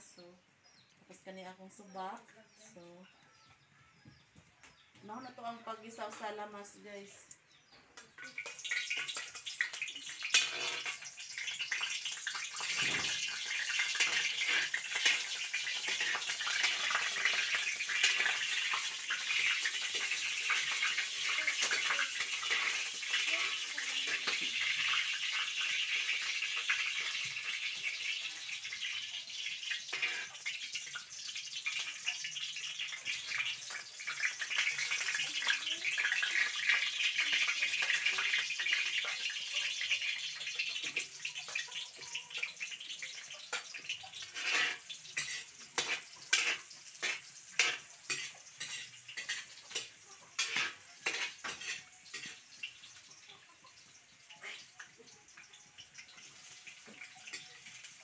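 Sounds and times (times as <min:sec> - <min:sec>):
garlic sizzling in hot oil: 0:04.1 - 0:58.0.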